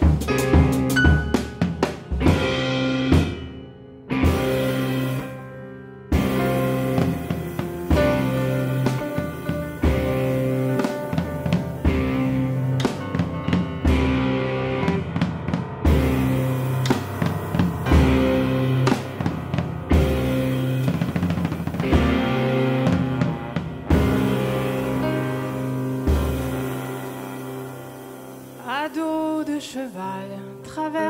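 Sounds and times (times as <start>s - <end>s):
drum kit: 0.0s - 31.0s
electric guitar: 0.0s - 31.0s
piano: 0.0s - 31.0s
trombone: 6.1s - 15.2s, 15.8s - 29.2s.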